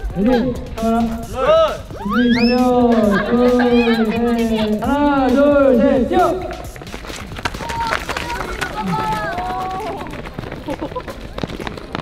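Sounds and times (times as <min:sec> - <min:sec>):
faint voices calling: 0:00.0 - 0:12.0
footsteps running on concrete: 0:00.0 - 0:12.0.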